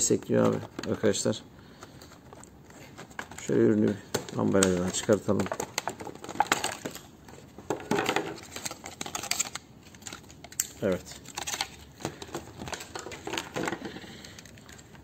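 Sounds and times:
plastic packaging crinkling: 0:02.0 - 0:15.0.

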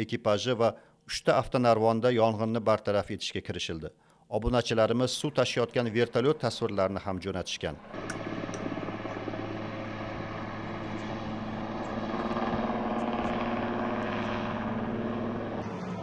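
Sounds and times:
helicopter engine: 0:07.8 - 0:16.0
helicopter rotor beating: 0:07.8 - 0:16.0.

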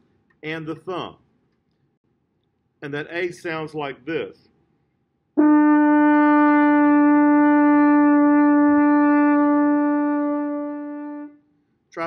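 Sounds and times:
french horn long steady note: 0:05.4 - 0:11.4.

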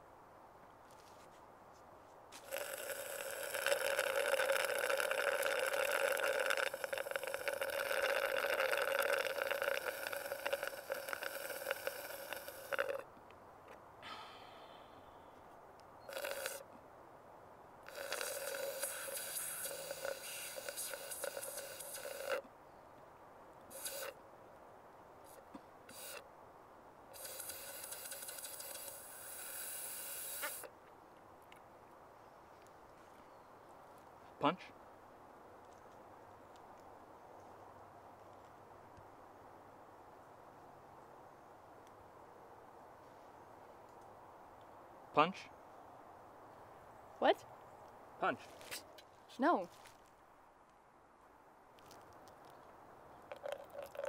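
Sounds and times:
person slurping and gulping drink: 0:02.4 - 0:13.0, 0:16.1 - 0:16.7, 0:17.9 - 0:22.4, 0:23.7 - 0:24.1, 0:27.2 - 0:30.7, 0:53.3 - 0:54.0.

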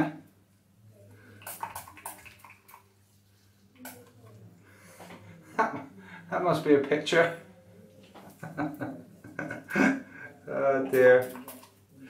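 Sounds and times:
faint spray hisses and crackles: 0:01.1 - 0:05.2.

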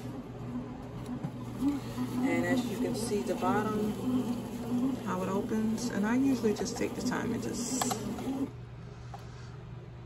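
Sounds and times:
bread machine motor humming: 0:00.0 - 0:08.6.

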